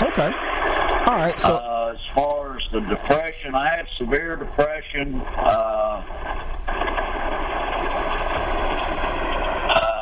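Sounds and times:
rushing noise on telephone line: 0:00.0 - 0:10.0.

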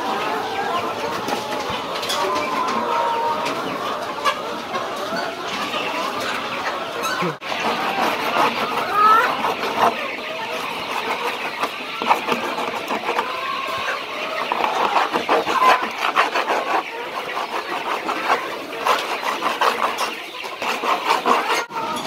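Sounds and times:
chickens clucking: 0:00.0 - 0:22.0.

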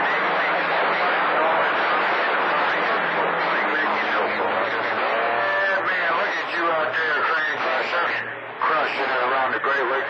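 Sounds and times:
radio band noise: 0:00.0 - 0:10.0
voices over radio receiver: 0:00.0 - 0:10.0.

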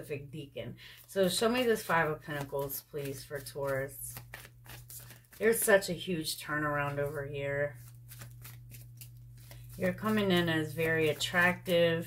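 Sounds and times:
steady low hum: 0:00.0 - 0:12.0
cards being shuffled: 0:00.9 - 0:05.9, 0:06.7 - 0:11.9.

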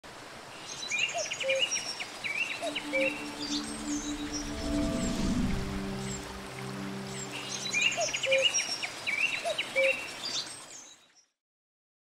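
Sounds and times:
soft steady nature hiss: 0:00.0 - 0:11.2
birds chirping: 0:01.7 - 0:10.4.

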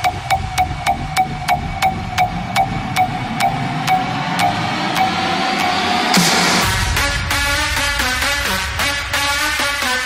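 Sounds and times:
low droning pad: 0:00.0 - 0:08.2.

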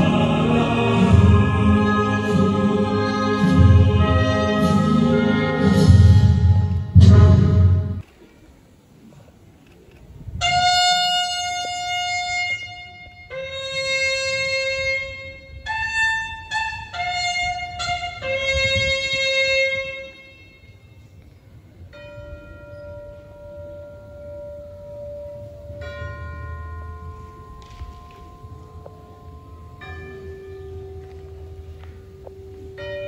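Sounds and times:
solo bugle call: 0:10.4 - 0:21.1.

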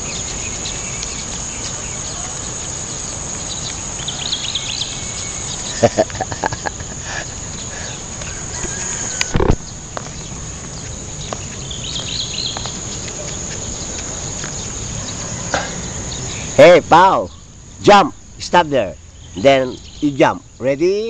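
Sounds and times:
insects droning: 0:00.0 - 0:21.0
person laughing: 0:05.7 - 0:09.4.

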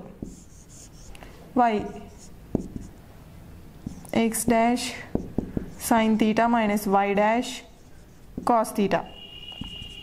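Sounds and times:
marker scratching on whiteboard: 0:00.0 - 0:03.0, 0:03.8 - 0:10.0
marker tip tapping: 0:02.5 - 0:03.0, 0:03.8 - 0:05.9, 0:09.5 - 0:10.0.

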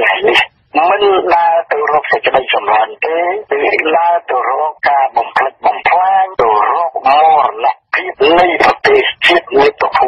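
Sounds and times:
person reading news: 0:00.0 - 0:10.0.

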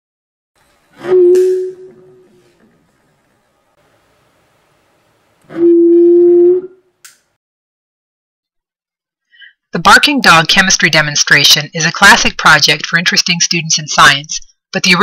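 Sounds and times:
alcohol vapour igniting woof: 0:00.6 - 0:06.3
hum from bottle: 0:00.6 - 0:07.3.

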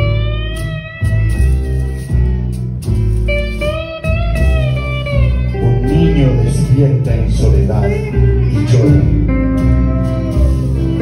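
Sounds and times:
bass: 0:00.0 - 0:11.0
guitar: 0:00.0 - 0:11.0
theremin sliding notes: 0:08.5 - 0:11.0.

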